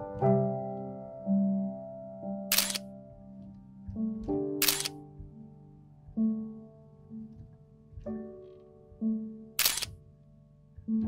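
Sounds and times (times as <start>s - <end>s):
slow keyboard music: 0.0s - 11.0s
camera shutter clicks: 2.5s - 2.8s, 4.6s - 4.9s, 9.6s - 9.9s.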